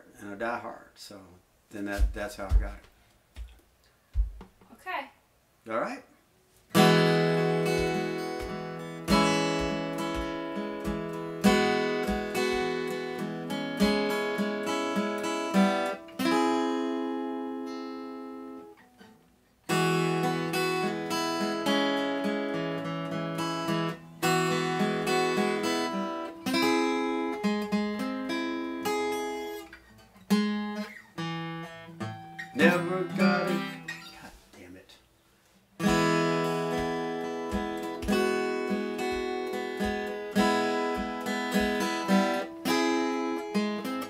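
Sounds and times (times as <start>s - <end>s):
acoustic guitar chords: 6.4s - 34.5s, 35.7s - 44.0s.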